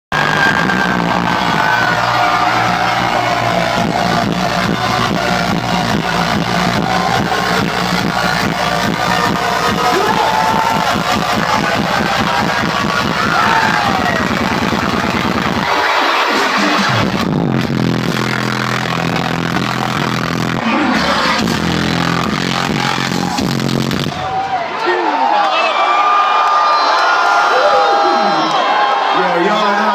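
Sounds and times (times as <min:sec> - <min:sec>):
crowd cheering: 0:00.0 - 0:29.9
heavy bass dubstep music: 0:00.1 - 0:24.2.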